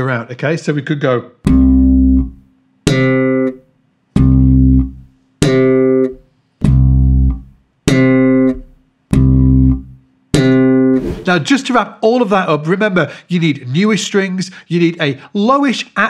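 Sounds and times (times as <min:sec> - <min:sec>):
slap bass guitar notes: 0:01.5 - 0:03.4, 0:04.2 - 0:10.7.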